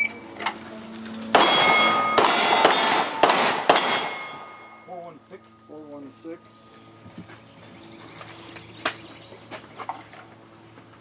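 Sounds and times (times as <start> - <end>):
pistol shots: 1.3 - 4.7
ring of struck steel plate: 1.3 - 5.2.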